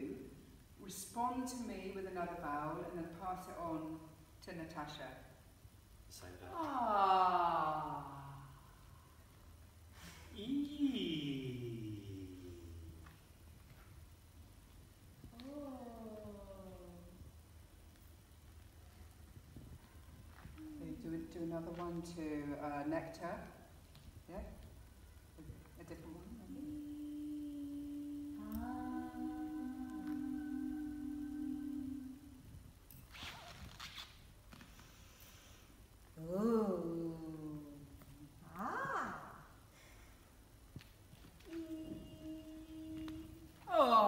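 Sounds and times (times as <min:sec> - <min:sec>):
person singing long vowel gliding down: 0:26.0 - 0:32.6, 0:41.4 - 0:44.0.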